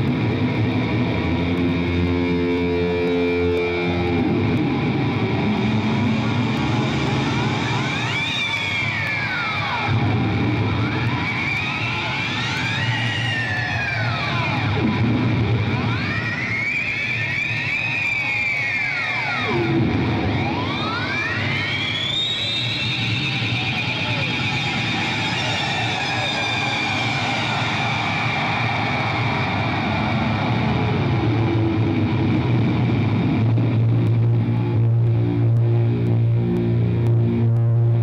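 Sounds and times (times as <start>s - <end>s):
distorted electric guitar sweeps: 0.0s - 38.0s.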